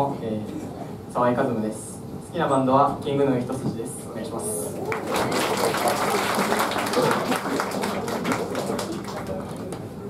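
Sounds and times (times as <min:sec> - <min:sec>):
audience applause: 0:04.8 - 0:09.9.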